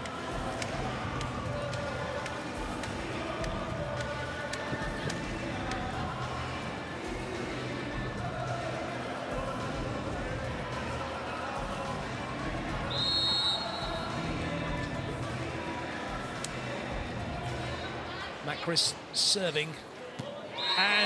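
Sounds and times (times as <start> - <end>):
music over loudspeakers: 0.0 - 18.0
referee's whistle: 12.9 - 14.1, 20.5 - 21.0.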